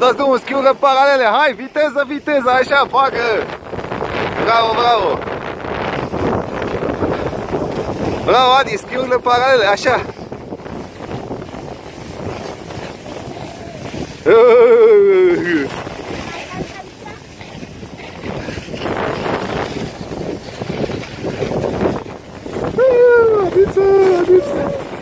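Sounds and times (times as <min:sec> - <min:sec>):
skis hissing over snow: 0:00.0 - 0:25.0
wind on microphone: 0:00.0 - 0:25.0
person shouting calls: 0:13.3 - 0:15.4, 0:22.7 - 0:24.9.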